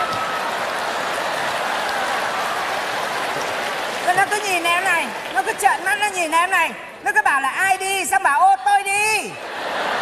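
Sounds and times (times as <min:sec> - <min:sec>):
audience applauding: 0:00.0 - 0:06.6
audience laughing: 0:09.3 - 0:10.0.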